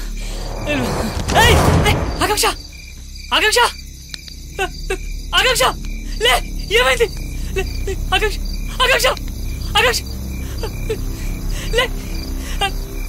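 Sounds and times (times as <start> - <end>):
crickets chirping: 0.0 - 13.0.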